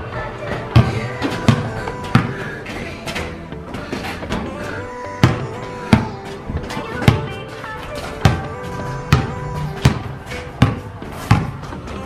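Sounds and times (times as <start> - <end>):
background music: 0.0 - 12.0
basketball bouncing on concrete: 0.5 - 4.5, 5.2 - 12.0.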